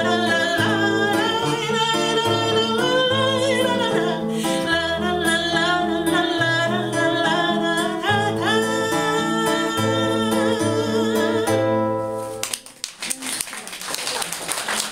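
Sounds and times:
woman singing with vibrato: 0:00.0 - 0:12.2
classical guitar: 0:00.0 - 0:13.5.

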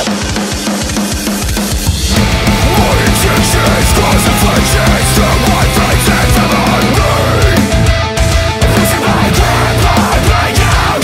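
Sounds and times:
heavy metal drum break: 0:00.0 - 0:11.0.

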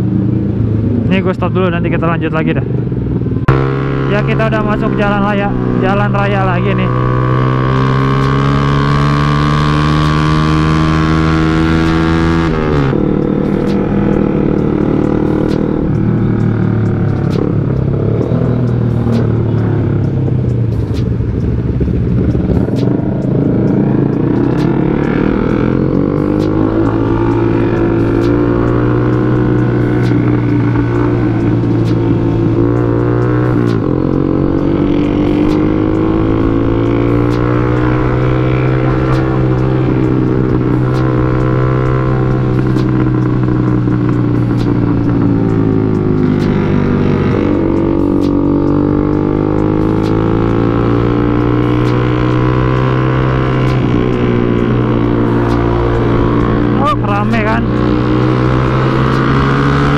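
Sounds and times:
motorcycle engine accelerating: 0:00.0 - 0:59.9.

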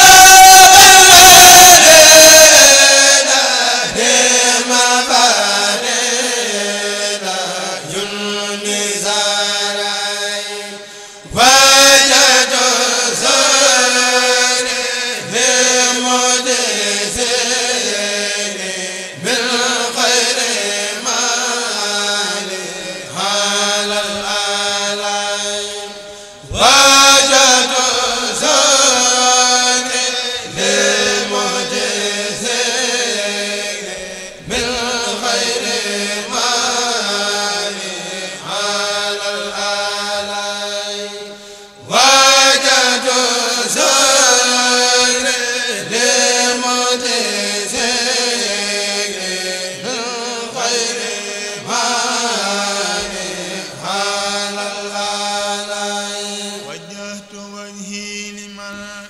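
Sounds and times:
men chanting in unison: 0:00.0 - 0:59.0.

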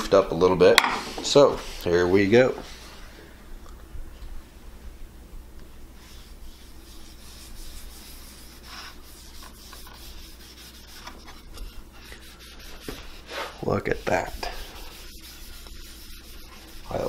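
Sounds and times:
cloth rag wiping board: 0:01.0 - 0:03.1, 0:06.0 - 0:17.0.

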